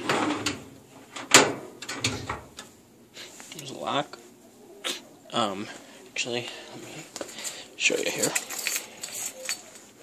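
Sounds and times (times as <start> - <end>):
metal drawer clack: 0.0 - 2.6.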